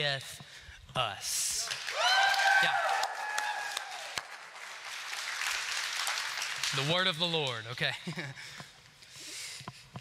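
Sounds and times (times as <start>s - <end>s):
high drawn-out cheer: 1.6s - 6.5s
congregation clapping: 1.6s - 7.6s.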